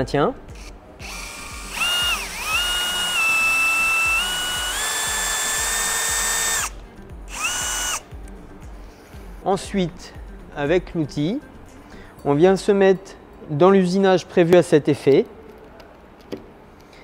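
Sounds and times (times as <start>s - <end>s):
cordless drill whining: 0.6s - 8.0s.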